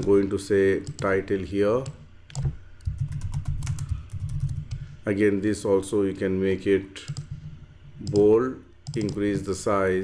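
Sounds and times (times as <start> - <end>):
computer keyboard typing: 0.8 - 1.2, 1.8 - 4.8, 7.0 - 7.4, 8.0 - 9.4.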